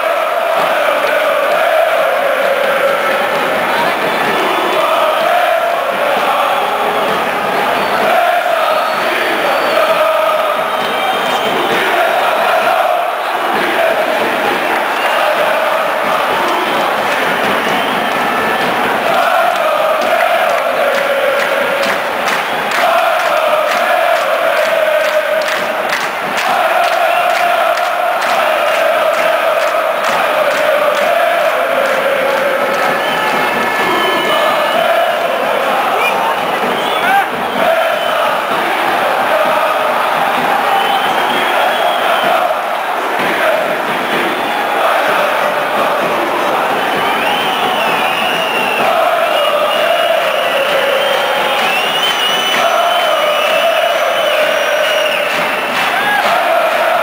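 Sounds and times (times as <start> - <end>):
football crowd chanting and singing: 0.0 - 57.0.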